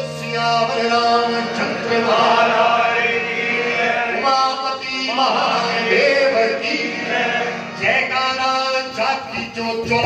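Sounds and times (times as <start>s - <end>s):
harmonium: 0.0s - 10.0s
men chanting: 0.5s - 10.0s.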